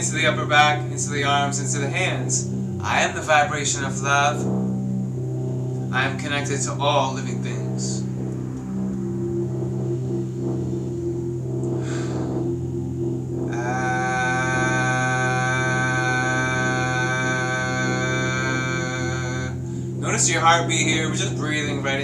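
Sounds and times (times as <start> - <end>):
man chanting long vowel: 0.0 - 4.5, 5.9 - 8.1, 13.5 - 22.0
soft background music with drone: 0.0 - 22.0.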